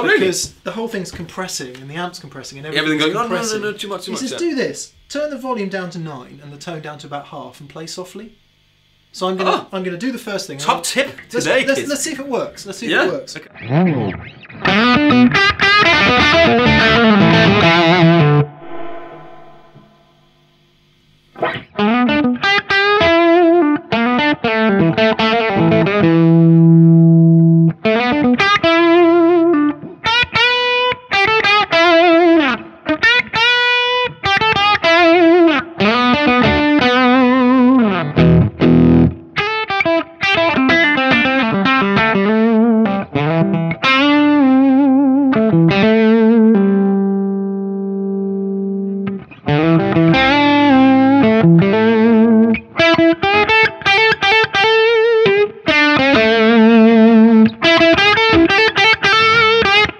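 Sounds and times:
overdriven electric guitar lead: 13.5 - 59.9.

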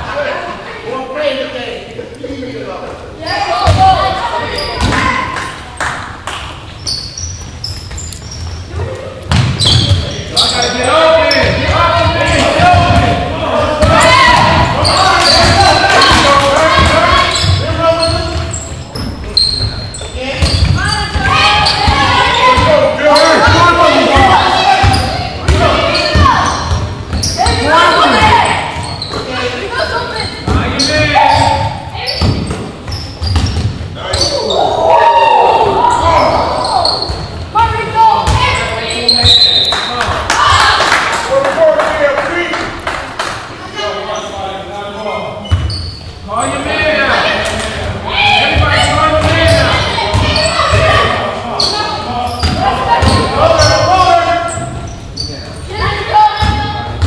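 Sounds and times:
ball bouncing on hardwood court: 3.6 - 5.5, 9.2 - 10.2, 11.4 - 22.8, 24.2 - 29.3, 30.2 - 34.3, 36.8 - 39.4, 48.4 - 51.1, 52.4 - 53.9, 55.8 - 57.0
players and spectators shouting: 10.4 - 18.6, 20.2 - 26.7, 27.3 - 32.1, 34.0 - 39.3, 46.3 - 54.8.

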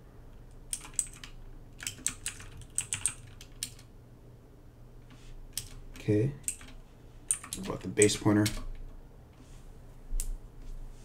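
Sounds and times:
computer keyboard typing: 0.7 - 3.9, 5.5 - 8.8.

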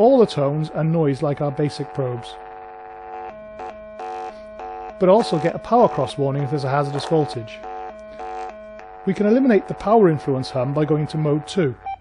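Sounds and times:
electronic tracing tones: 0.0 - 12.0
hissing data-line interference: 0.0 - 12.0
steady power hum: 0.0 - 12.0.

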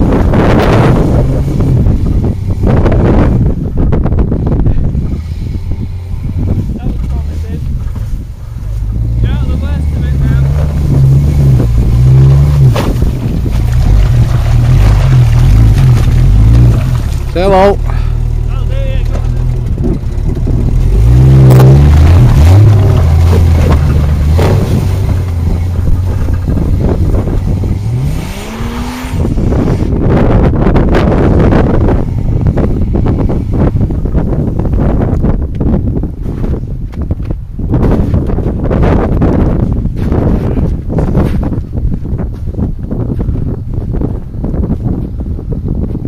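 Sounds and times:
vehicle engine revving: 0.0 - 36.5
tyres churning through snow: 0.0 - 46.0.

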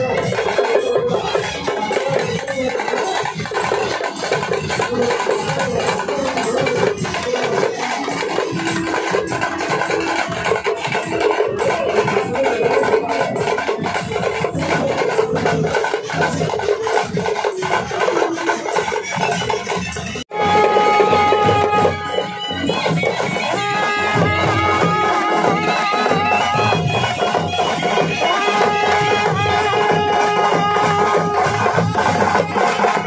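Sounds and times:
fast dense drumming: 0.0 - 33.0.

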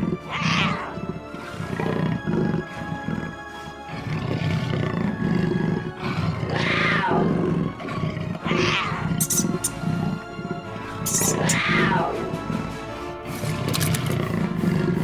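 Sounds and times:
background music: 0.0 - 15.0
big cat roar: 0.0 - 15.0.

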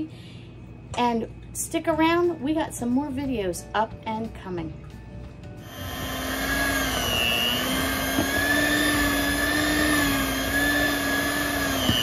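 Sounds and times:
electric mixer running: 5.6 - 12.0.

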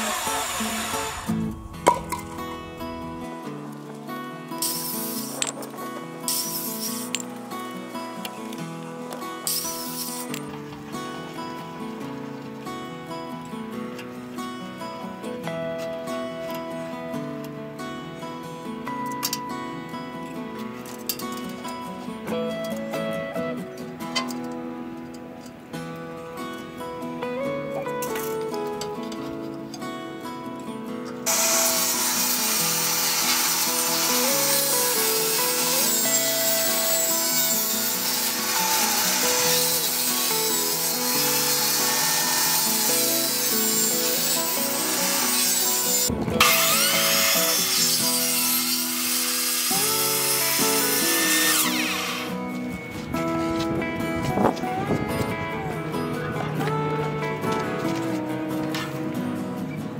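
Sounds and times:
table saw cutting plywood: 0.0 - 1.6, 31.3 - 52.4
background music: 0.0 - 59.9.

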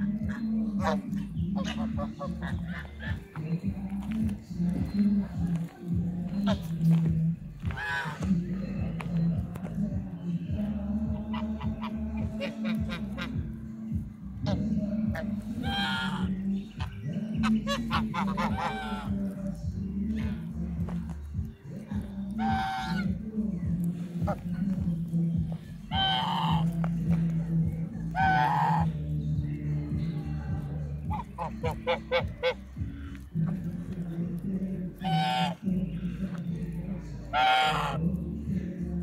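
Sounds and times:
geese honking: 0.0 - 39.0.

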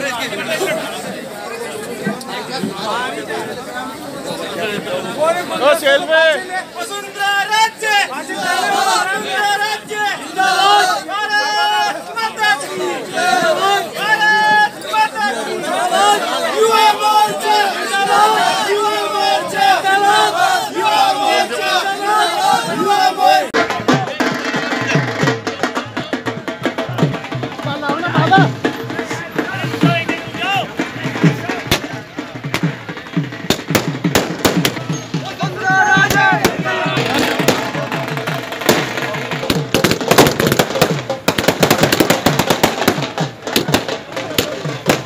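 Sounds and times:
crowd shouting and chanting: 0.0 - 45.0
music with steady drum beat: 23.5 - 45.0
firecrackers cracking: 31.1 - 35.1, 36.0 - 45.0.

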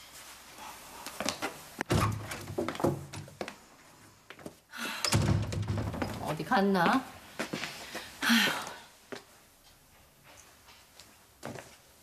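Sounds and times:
wooden door shutting: 5.1 - 6.2.

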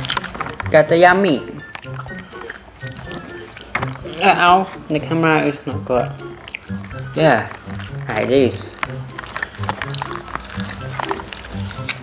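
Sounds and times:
music with low held notes: 0.0 - 12.0.

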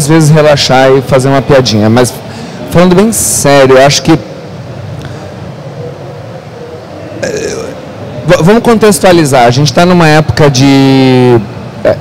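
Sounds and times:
hall background hum and hiss: 0.0 - 12.0.

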